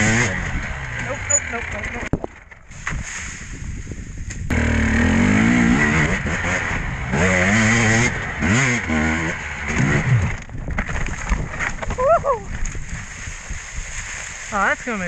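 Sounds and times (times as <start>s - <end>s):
dirt bike engine revving: 0.0s - 2.1s, 4.4s - 10.4s.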